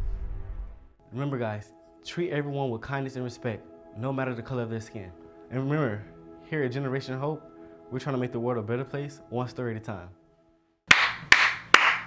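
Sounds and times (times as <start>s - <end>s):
person clapping hands slowly: 10.9s - 12.0s.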